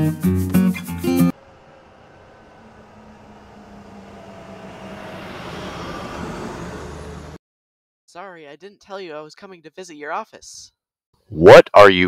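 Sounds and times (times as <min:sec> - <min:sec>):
road noise: 0:00.6 - 0:07.4
car engine hum: 0:00.7 - 0:07.4.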